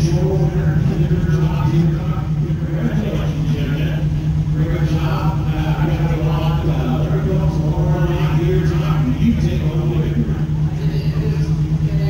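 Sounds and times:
race car engine idling: 0.0s - 12.0s.

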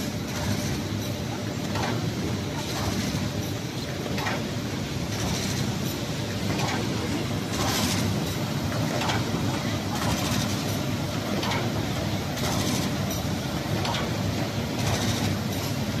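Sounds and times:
folder gluer machine running: 0.0s - 16.0s.

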